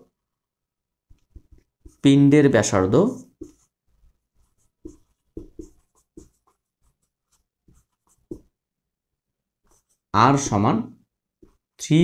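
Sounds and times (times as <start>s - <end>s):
marker writing on whiteboard: 1.1s - 8.7s, 9.5s - 10.6s, 11.2s - 11.8s.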